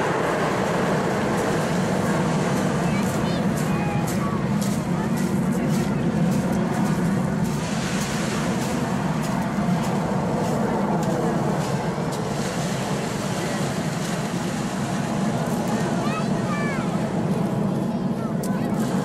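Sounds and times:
jets flying overhead: 0.0 - 19.0.

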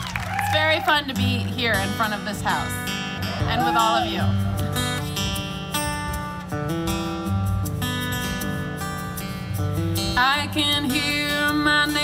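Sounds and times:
upright bass: 0.0 - 12.0
strummed acoustic guitar: 0.6 - 12.0.

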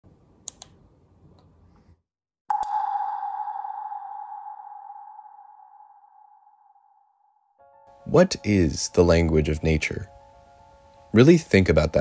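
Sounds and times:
sharp ringing ping: 2.5 - 7.0.

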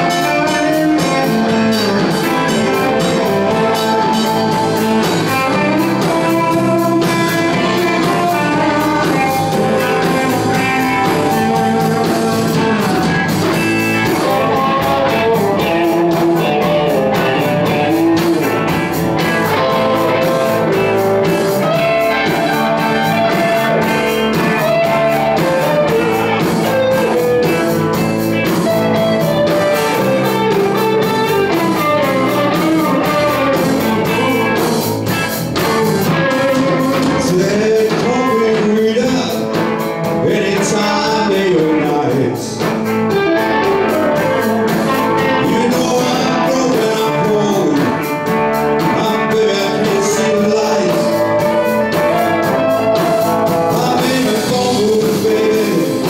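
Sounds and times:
bass guitar: 0.0 - 56.0
drum kit: 0.0 - 56.0
electric guitars: 0.0 - 56.0.

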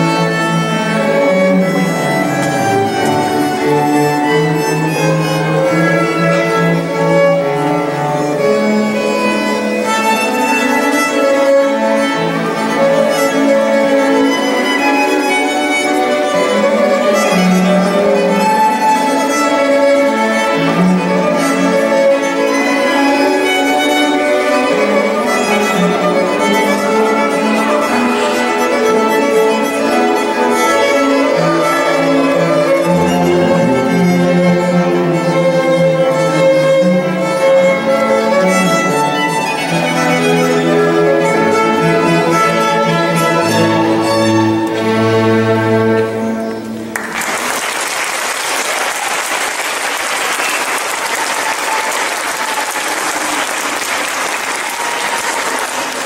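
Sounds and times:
cello playing: 0.0 - 47.7
violins playing: 0.0 - 56.0.

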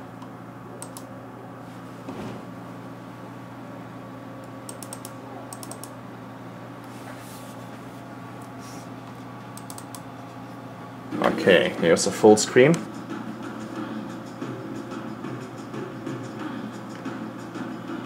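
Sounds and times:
steady low hum: 0.0 - 18.0
computer clicks: 0.8 - 1.1, 4.4 - 6.0, 9.5 - 10.1.

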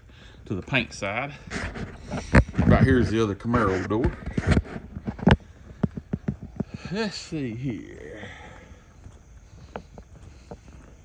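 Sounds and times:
footsteps on concrete: 0.5 - 11.0.

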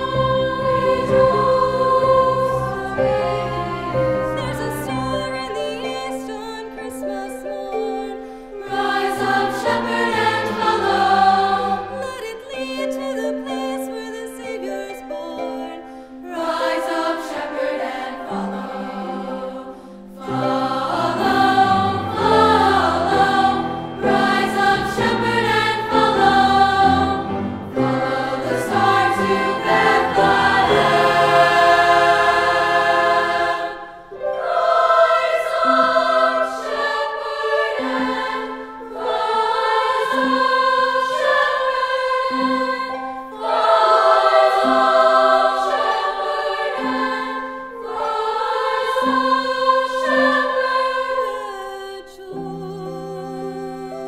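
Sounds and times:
girls' choir singing: 0.0 - 54.0
piano accompaniment: 0.0 - 54.0.

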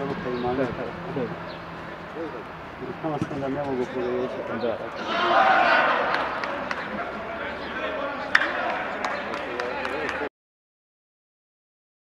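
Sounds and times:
men talking over one another: 0.0 - 10.3.

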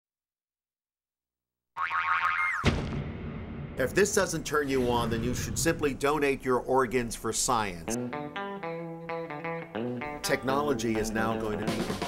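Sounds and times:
cartoon boing sound effect: 1.8 - 2.9.

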